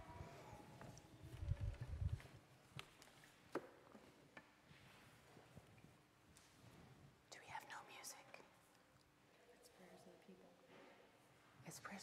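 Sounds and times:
faint whisper: 7.3 - 8.6, 11.6 - 12.0.

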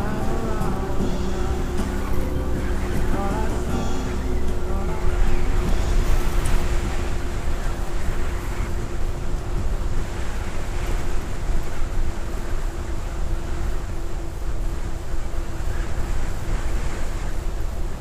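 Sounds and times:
music: 0.0 - 11.0
steady hum: 0.0 - 18.0
wind rushing over microphone: 0.0 - 18.0.

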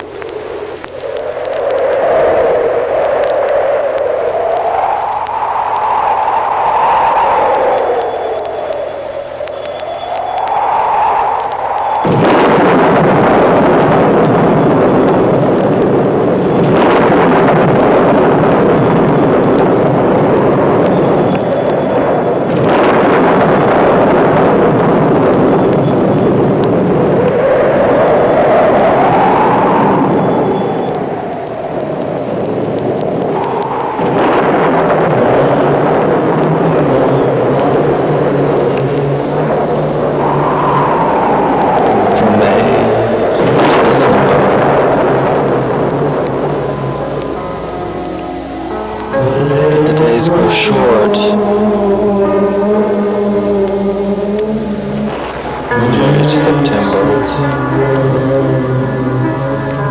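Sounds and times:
loud rushing noise: 0.0 - 59.9
low hum: 0.0 - 59.9.

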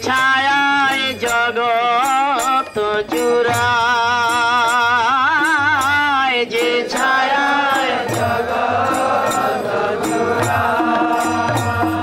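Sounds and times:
voices singing devotional song: 0.0 - 12.0
sustained accompaniment: 0.1 - 12.0.

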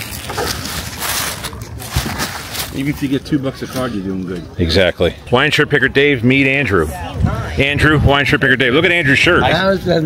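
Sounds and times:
plastic bag crinkling: 0.0 - 3.2
plastic sleeves rustling: 0.0 - 3.2.

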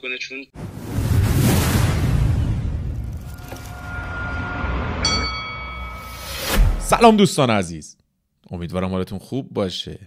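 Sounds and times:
metallic bell-like chime: 3.8 - 6.6.

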